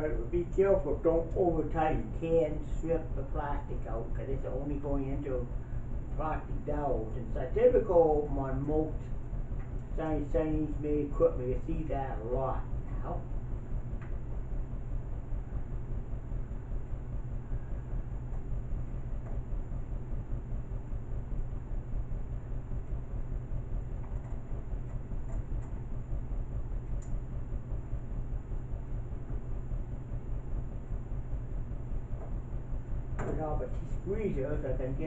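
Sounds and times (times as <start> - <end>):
low background rumble: 0.0 - 35.0.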